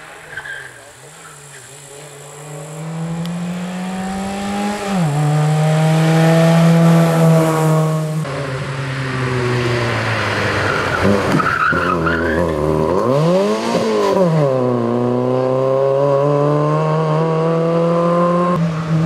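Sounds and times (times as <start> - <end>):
rally car engine revving: 0.0 - 19.0
tyre squeal: 0.2 - 2.8, 10.6 - 12.6.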